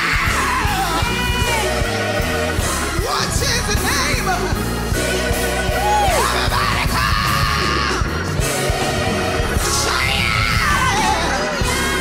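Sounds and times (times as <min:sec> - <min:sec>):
gospel band playing: 0:00.0 - 0:12.0.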